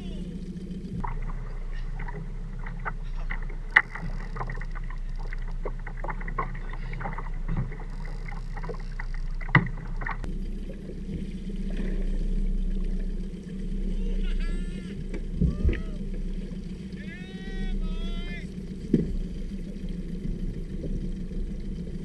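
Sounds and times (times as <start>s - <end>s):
low steady hum: 0.0s - 22.0s
water knocking against boat hull: 18.8s - 19.4s.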